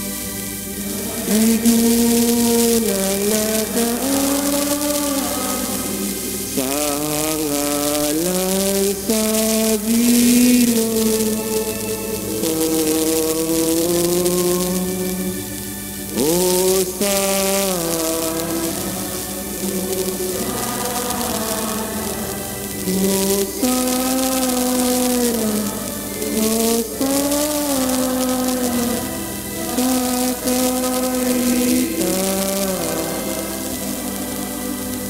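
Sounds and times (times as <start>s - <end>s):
church choir singing a hymn: 0.0s - 35.0s.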